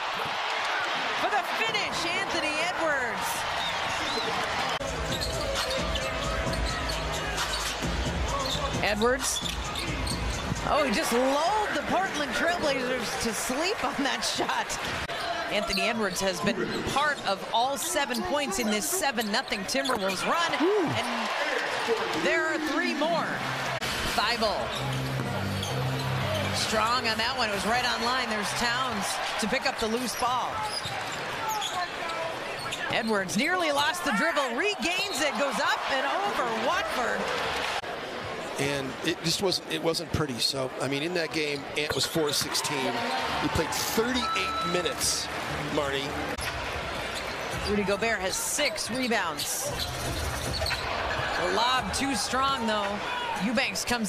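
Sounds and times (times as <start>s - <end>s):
arena crowd murmur: 0.0s - 54.0s
shoe squeaks: 5.1s - 10.4s, 24.7s - 26.6s, 29.9s - 33.3s, 41.5s - 42.5s, 48.8s - 51.0s.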